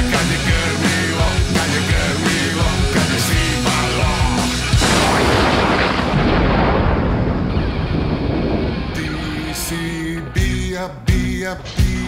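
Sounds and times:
punk rock band rumbling: 0.0 - 12.0.

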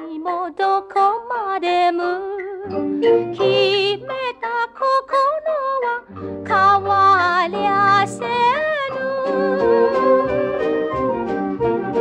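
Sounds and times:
old pop song with gliding melody: 0.0 - 12.0.

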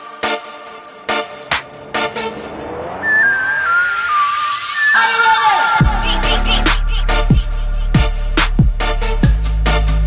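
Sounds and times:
electronic instrumental music: 0.0 - 10.0
rising sweep with hiss: 1.7 - 5.8
high squealing tone sliding down: 1.9 - 6.6.

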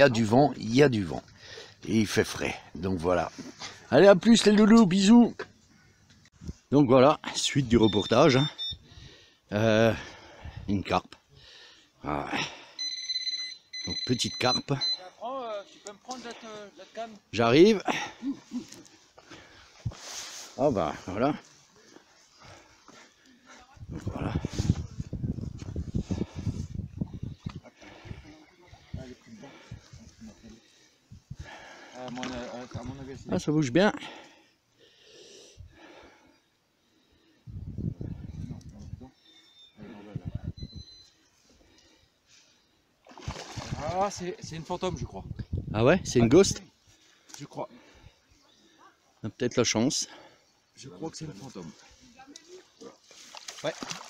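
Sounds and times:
fish thrashing and splashing: 43.0 - 44.1, 52.7 - 54.0.

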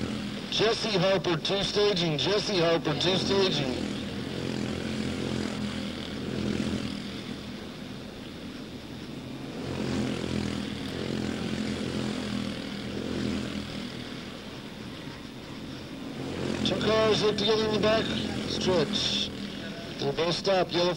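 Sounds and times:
race car engines buzzing: 0.0 - 20.9.

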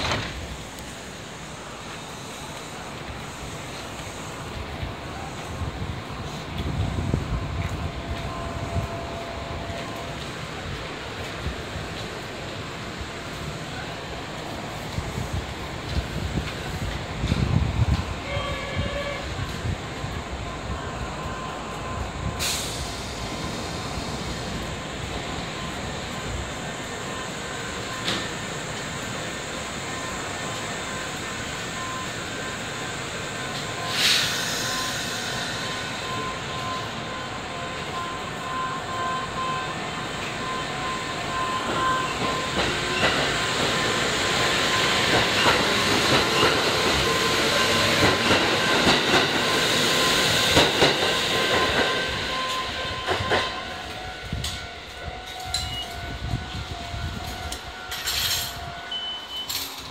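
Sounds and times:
electric train running whine: 0.0 - 59.9
air hiss: 22.3 - 24.7, 33.1 - 36.1.

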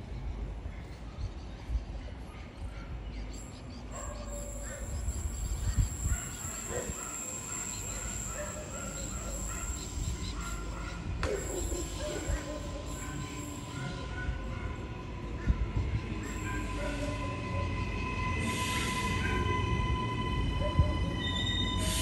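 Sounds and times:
electric train rumbling: 2.9 - 22.0
thin high steady tone: 3.4 - 14.1
train whine: 3.4 - 22.0.

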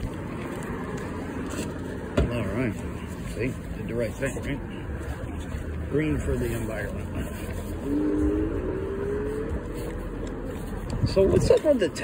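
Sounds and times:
scooter rumble on pavement: 0.0 - 12.0
wind noise: 10.5 - 11.7.

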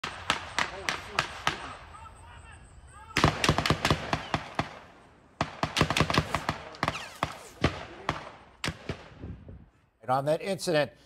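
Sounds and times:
gunshots in rapid bursts: 0.0 - 2.1, 3.0 - 9.3.

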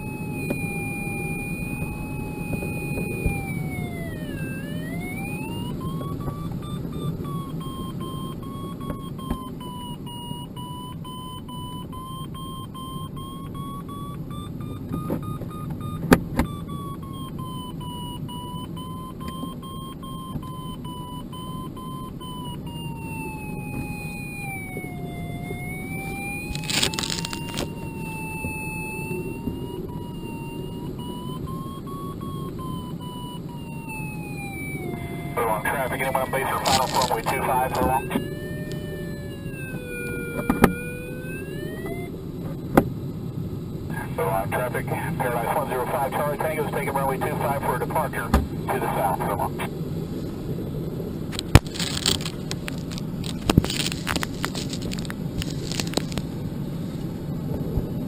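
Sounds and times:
variometer wavering tone: 0.0 - 42.5.

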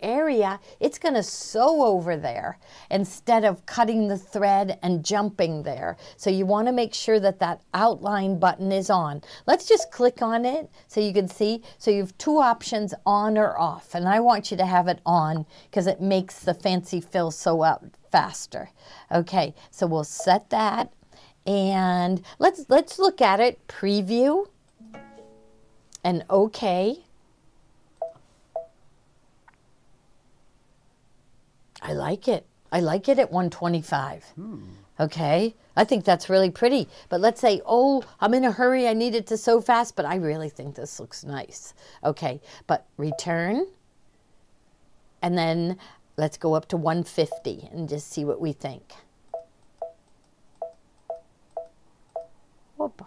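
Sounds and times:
short touchscreen beeps: 28.0 - 28.7
touchscreen beeps: 28.0 - 28.8, 49.3 - 50.0, 50.6 - 52.3.

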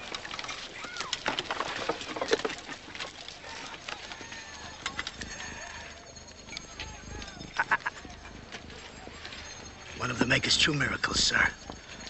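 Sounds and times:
market crowd hubbub: 0.0 - 12.0.

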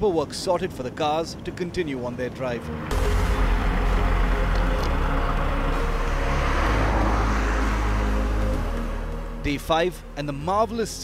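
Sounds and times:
car driving past on wet road: 2.6 - 9.4
low rumble: 2.6 - 10.2.

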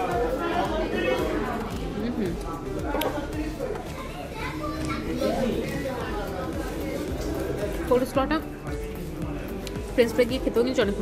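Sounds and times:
people chattering: 0.0 - 11.0
children's voices: 3.7 - 6.0.

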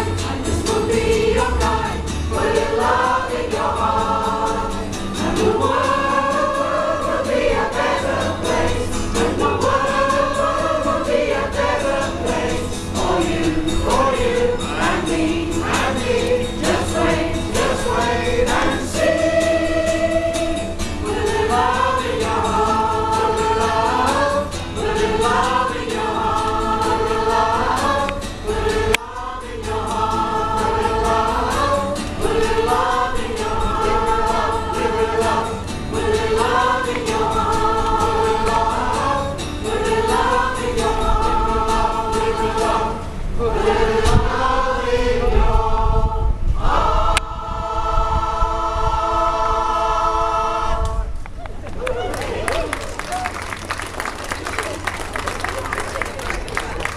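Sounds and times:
acoustic guitar: 0.0 - 44.9
choir singing: 0.0 - 51.2.

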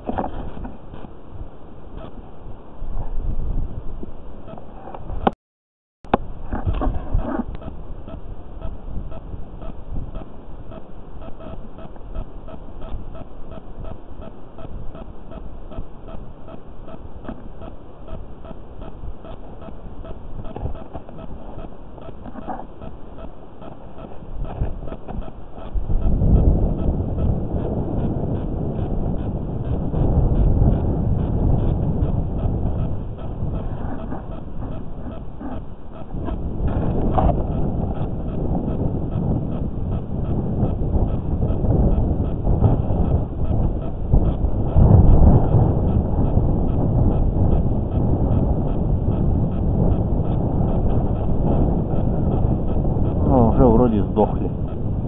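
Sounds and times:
wind buffeting microphone: 0.0 - 5.3, 6.1 - 55.0.

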